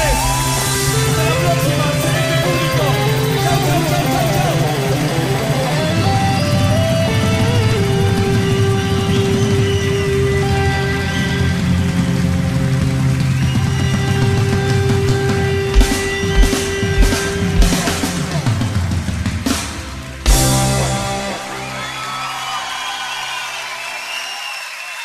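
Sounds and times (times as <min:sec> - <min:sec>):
live rock band playing: 0:00.0 - 0:23.2.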